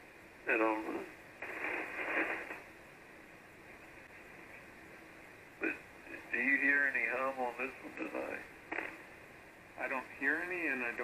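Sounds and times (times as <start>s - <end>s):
radio receiver hiss: 0.0s - 11.0s
radio static rush: 0.5s - 2.8s, 5.6s - 9.2s.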